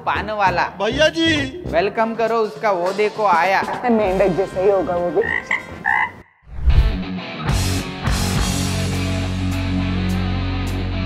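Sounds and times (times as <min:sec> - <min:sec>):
cartoon frog croaks: 0:05.2 - 0:06.4
deep bass hit: 0:06.5 - 0:07.1
heavy rock music: 0:07.0 - 0:11.0.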